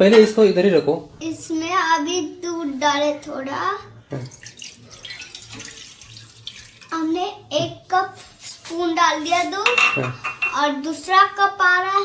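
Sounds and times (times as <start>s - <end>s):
milk pouring into saucepan: 4.2s - 7.2s.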